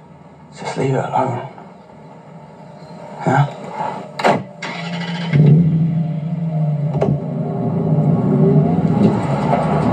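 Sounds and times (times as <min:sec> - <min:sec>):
car engine revving: 0:03.8 - 0:09.9.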